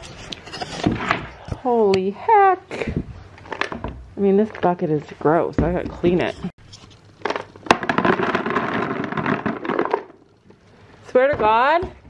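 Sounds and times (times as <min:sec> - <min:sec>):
pellets rattling into plastic bucket: 0:07.2 - 0:10.4.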